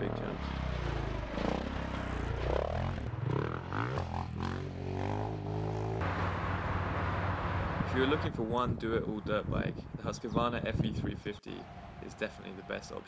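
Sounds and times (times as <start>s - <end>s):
dirt bike engine revving: 0.0s - 7.8s.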